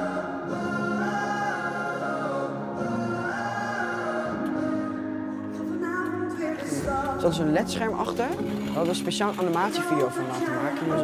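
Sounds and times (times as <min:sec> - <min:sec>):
pop song with voices singing: 0:00.0 - 0:11.0.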